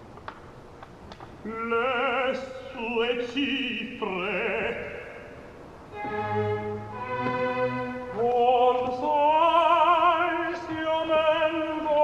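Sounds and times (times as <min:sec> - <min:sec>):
orchestra strings held chords: 0:05.9 - 0:09.4
solo opera voice with vibrato: 0:07.8 - 0:12.0.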